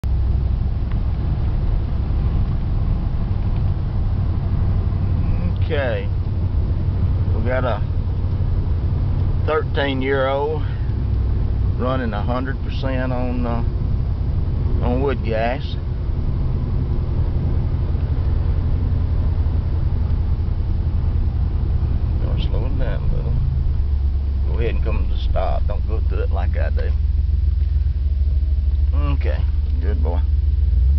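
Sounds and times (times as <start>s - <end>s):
engine and road rumble in cab: 0.0s - 30.9s.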